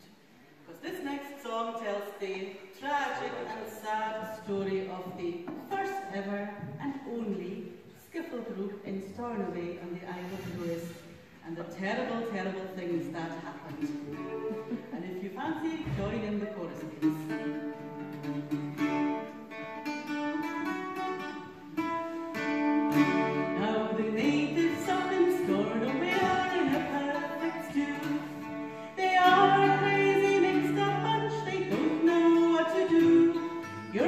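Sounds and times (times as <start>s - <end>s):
acoustic folk group playing: 8.9s - 34.0s
guitar: 12.8s - 34.0s.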